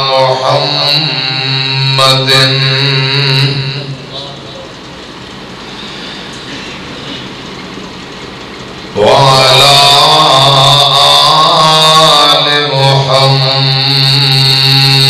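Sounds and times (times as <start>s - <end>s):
man chanting loudly: 0.0s - 4.8s, 8.9s - 15.0s.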